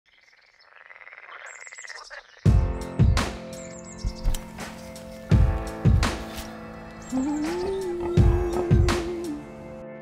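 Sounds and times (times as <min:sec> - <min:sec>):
frog trilling: 0:00.1 - 0:02.5.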